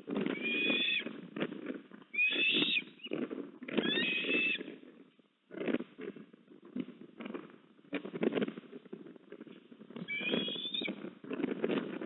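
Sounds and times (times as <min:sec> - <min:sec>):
ospreys whistled calls: 0:02.2 - 0:03.2, 0:10.1 - 0:10.9.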